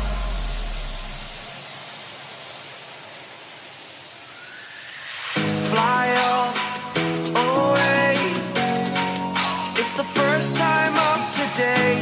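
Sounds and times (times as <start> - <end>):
low bass note: 0.0 - 1.4
even hiss: 0.0 - 12.0.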